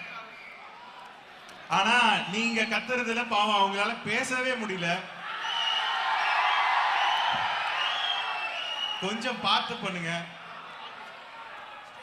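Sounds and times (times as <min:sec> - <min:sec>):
large crowd cheering and shouting: 0:00.0 - 0:12.0.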